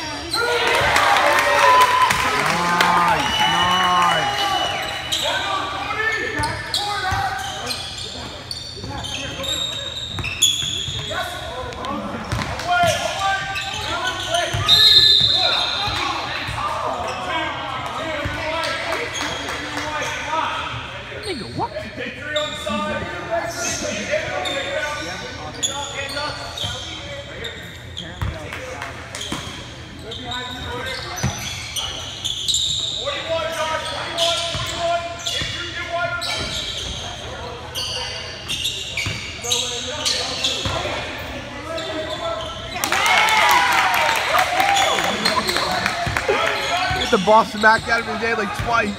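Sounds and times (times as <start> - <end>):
shoe squeal: 3.1 - 11.6, 12.2 - 16.3, 22.2 - 28.4, 29.2 - 42.9, 44.6 - 48.9.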